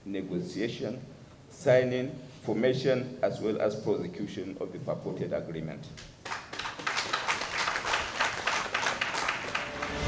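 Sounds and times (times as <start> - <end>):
small group applauding: 6.0 - 10.0.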